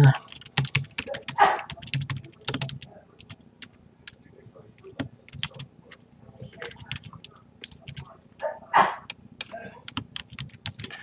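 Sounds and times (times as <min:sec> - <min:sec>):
computer keyboard typing: 0:00.0 - 0:04.2, 0:04.8 - 0:06.0, 0:06.6 - 0:08.1, 0:09.0 - 0:11.0.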